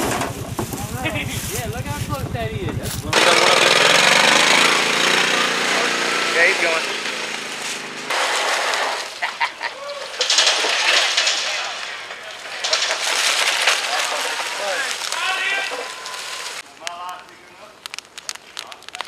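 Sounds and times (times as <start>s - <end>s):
campfire crackling: 0.0s - 5.4s, 6.4s - 19.0s
faint voices: 13.7s - 17.8s.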